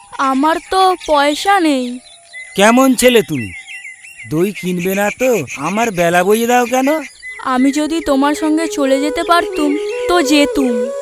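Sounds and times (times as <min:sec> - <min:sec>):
people talking: 0:02.6 - 0:03.6, 0:04.3 - 0:10.9.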